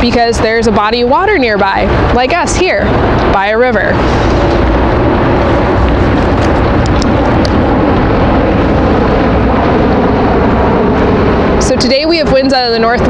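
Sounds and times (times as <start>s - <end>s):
distant engine drone: 0.0s - 13.0s.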